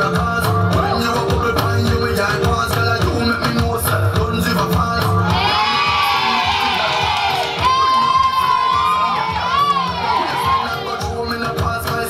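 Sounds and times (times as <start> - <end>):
dance music: 0.0 - 12.0
crowd screaming and cheering: 5.0 - 12.0.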